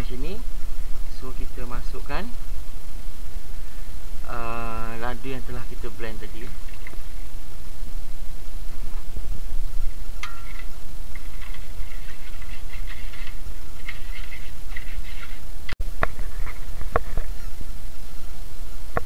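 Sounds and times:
spatula stirring paste in wok: 10.4 - 15.5.

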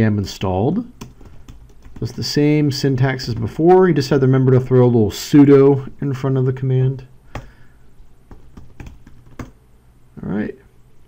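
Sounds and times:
keyboard keys clicking: 1.0 - 2.2, 8.3 - 9.6.

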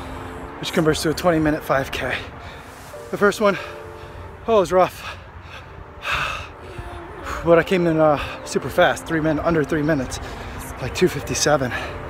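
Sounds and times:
runner gasping breath: 2.3 - 3.0, 3.6 - 7.4.

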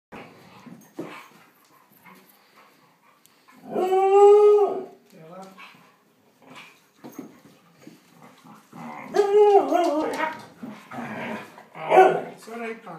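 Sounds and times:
dogs scuffling and grumbling: 0.2 - 4.0, 4.6 - 12.6
dog whining: 3.6 - 4.9, 8.8 - 12.2
dog howling: 3.6 - 5.0, 8.8 - 10.6.

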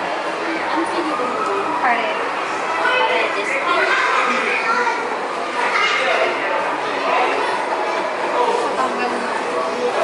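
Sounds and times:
indistinct voices chattering: 0.0 - 10.0.

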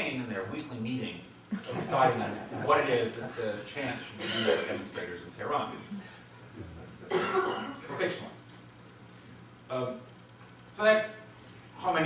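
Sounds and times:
person coughing: 4.2 - 4.9, 7.1 - 8.0.

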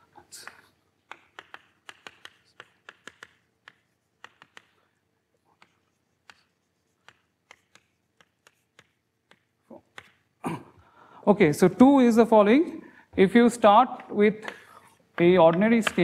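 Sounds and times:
chalk tapping on blackboard: 0.4 - 10.3, 14.0 - 16.0.

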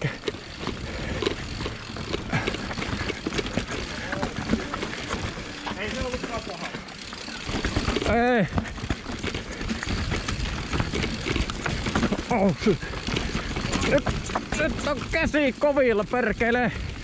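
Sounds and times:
mountain bike clattering: 0.0 - 17.0.

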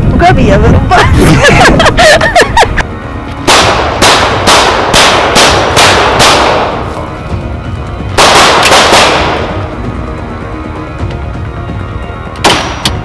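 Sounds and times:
handgun shots echoing: 3.5 - 7.0, 8.2 - 9.6, 12.4 - 13.0.

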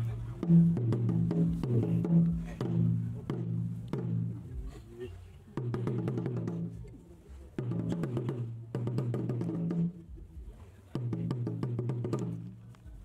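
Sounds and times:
talking drums beaten with sticks: 0.0 - 13.0.

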